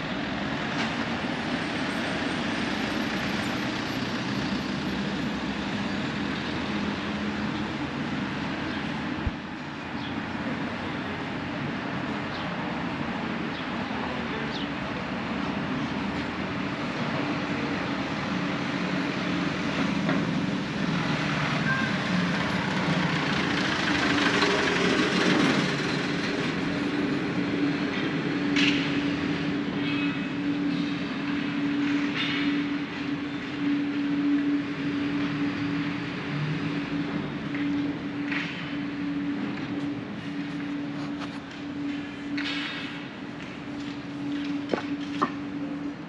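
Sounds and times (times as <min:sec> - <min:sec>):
city street noise: 0:00.0 - 0:46.0.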